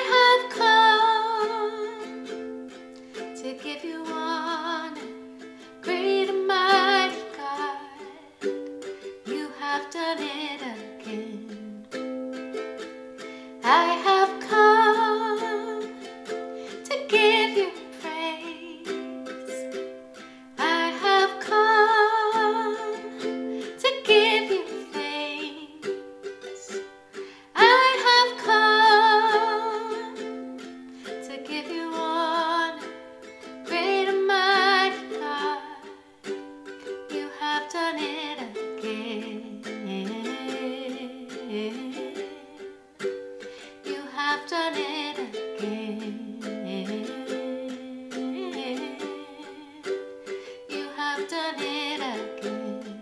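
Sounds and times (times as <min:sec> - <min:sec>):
woman singing with vibrato: 0:00.0 - 0:02.4, 0:03.4 - 0:08.5, 0:09.1 - 0:12.0, 0:13.6 - 0:16.1, 0:16.7 - 0:19.9, 0:20.5 - 0:30.4, 0:31.0 - 0:36.2, 0:36.9 - 0:43.0, 0:43.6 - 0:53.0
ukulele strumming chords: 0:00.0 - 0:53.0.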